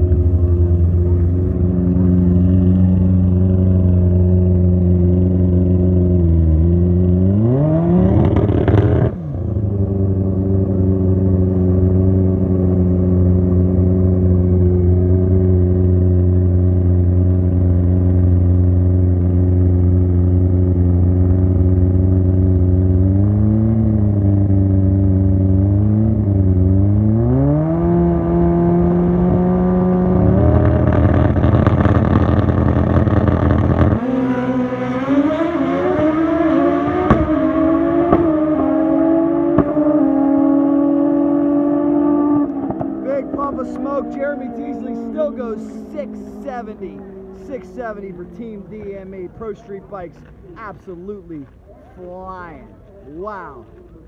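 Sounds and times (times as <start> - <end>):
engine throttle blips: 0.0 - 54.0
motorcycle engine idling and revving: 0.0 - 54.0.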